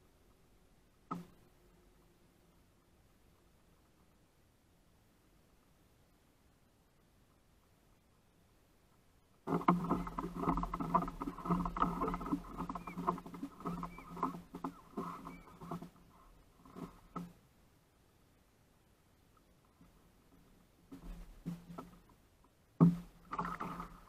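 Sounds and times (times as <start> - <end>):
low hum of hull and water: 0.0 - 24.0
knocks and bumps aboard kayak: 9.5 - 17.4, 20.9 - 22.2, 22.8 - 24.0.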